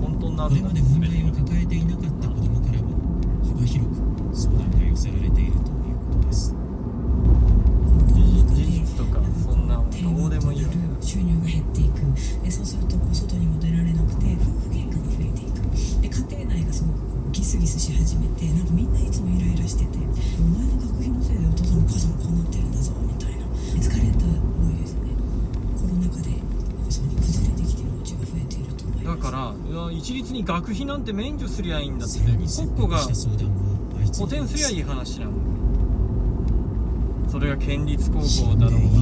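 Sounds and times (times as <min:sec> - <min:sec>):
car engine and tyres rumbling: 0:00.0 - 0:39.0
muffled low-pitched talk: 0:32.0 - 0:35.4, 0:37.3 - 0:39.0.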